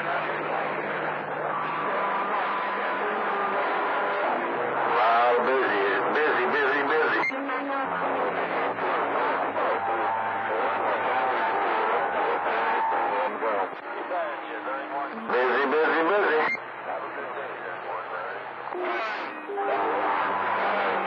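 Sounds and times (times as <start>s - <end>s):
garbled radio voices: 0.0s - 21.0s
stronger radio voice: 0.0s - 21.0s
radio whistling tones: 4.8s - 7.4s, 15.5s - 16.6s.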